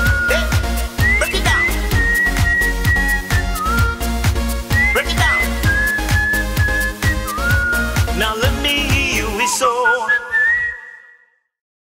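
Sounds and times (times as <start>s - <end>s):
whistled note in dance music: 0.0s - 11.6s.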